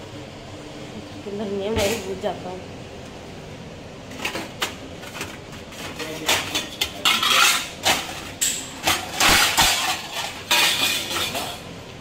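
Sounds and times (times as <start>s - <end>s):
steel plates and bowls clanking: 5.7s - 11.7s.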